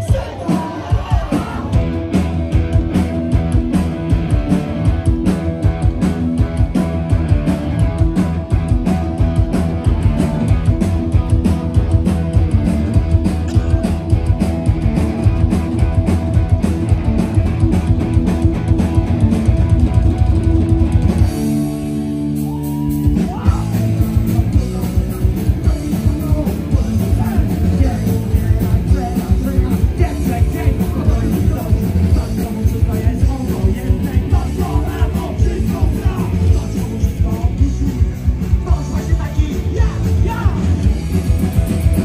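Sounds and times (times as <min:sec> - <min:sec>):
bass guitar: 0:00.0 - 0:42.0
distorted electric guitars: 0:00.0 - 0:42.0
fast drums: 0:00.0 - 0:42.0.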